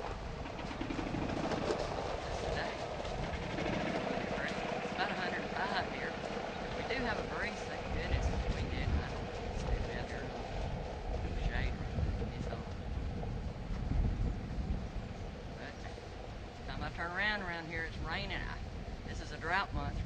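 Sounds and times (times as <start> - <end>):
small vehicle engine running: 0.0 - 17.0
tires creeping over gravel: 0.0 - 17.1.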